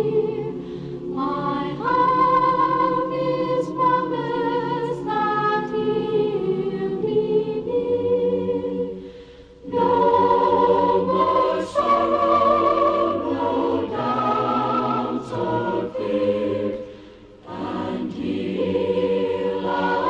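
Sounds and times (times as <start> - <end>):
chorus singing a gospel hymn: 0.0 - 20.0.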